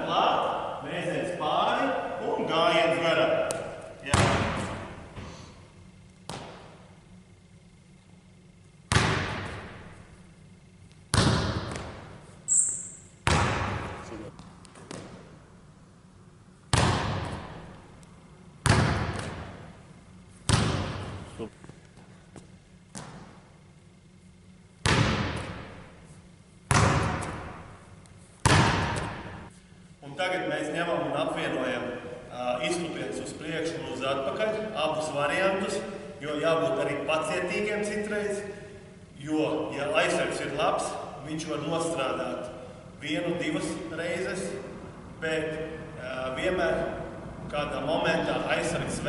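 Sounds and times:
basketball bouncing on wooden floor: 4.1 - 4.8, 6.3 - 6.8, 11.1 - 12.1, 13.2 - 15.2, 16.7 - 17.7, 18.6 - 19.6, 20.5 - 21.2, 24.8 - 25.8, 26.7 - 27.7, 28.4 - 29.5
sneaker squeak: 12.4 - 13.2.

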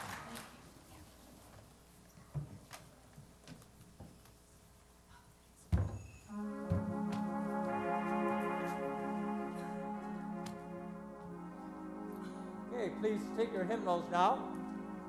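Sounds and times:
church organ chord: 6.3 - 15.0.

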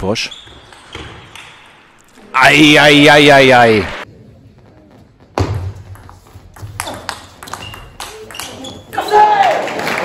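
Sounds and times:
table tennis ball hits: 5.4 - 8.9.

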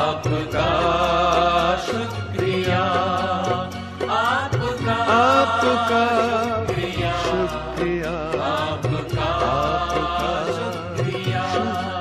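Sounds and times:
instrumental backing: 0.0 - 12.0
light percussion: 0.0 - 12.0
person singing ornamented runs: 0.0 - 12.0.

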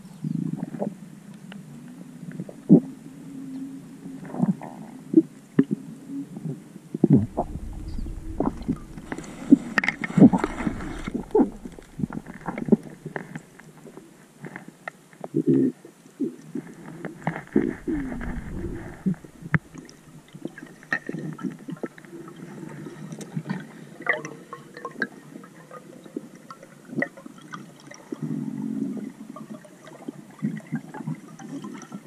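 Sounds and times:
low rumble: 7.1 - 14.0, 17.2 - 20.9
underwater gurgling: 7.1 - 14.0, 17.1 - 22.9.

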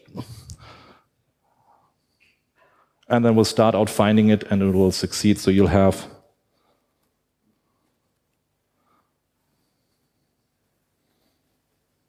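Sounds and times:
man speaking: 3.1 - 6.2.

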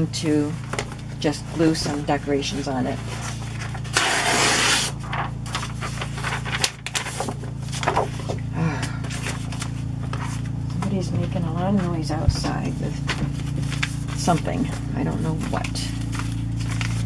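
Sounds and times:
paper rustling and sliding: 0.6 - 8.5, 9.1 - 10.6, 11.8 - 17.0.

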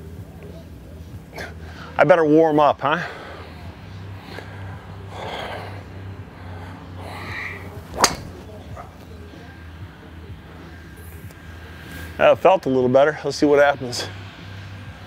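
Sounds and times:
low background hum: 0.0 - 15.0
golf club striking ball: 7.9 - 8.7.

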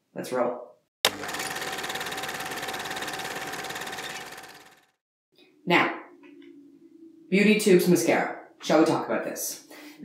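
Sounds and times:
rapid mechanical buzz: 1.1 - 5.0.

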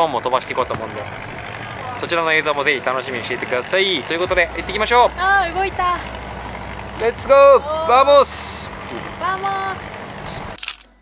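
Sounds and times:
boat noise: 0.0 - 10.6
camera shutter click: 10.3 - 11.0.

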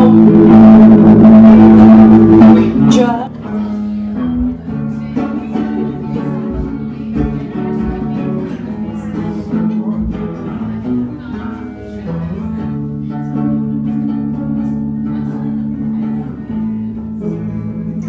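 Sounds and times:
person singing: 0.0 - 3.9
acoustic guitar playing: 0.0 - 18.0.

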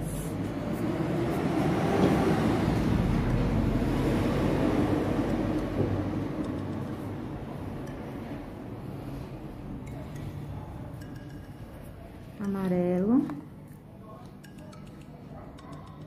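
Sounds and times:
vehicle passing rumble: 0.0 - 9.8.

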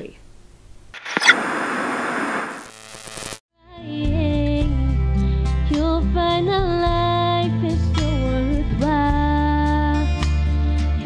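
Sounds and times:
tv static noise burst: 1.0 - 3.4
music: 3.6 - 11.0.

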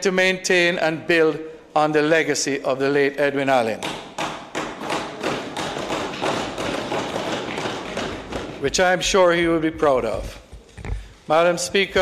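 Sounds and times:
knocking on desks: 3.8 - 8.8.

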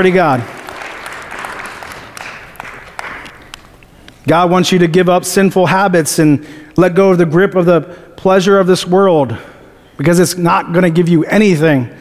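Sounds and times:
congregation applause: 0.0 - 3.7.

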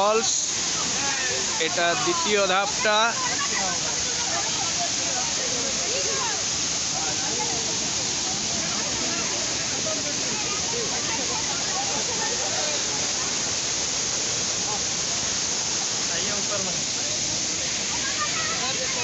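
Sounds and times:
waterfall rushing: 0.0 - 19.0.

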